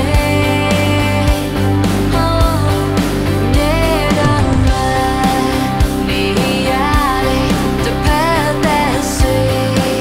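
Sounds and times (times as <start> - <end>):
pop-rock band music: 0.0 - 10.0
woman singing: 0.0 - 10.0.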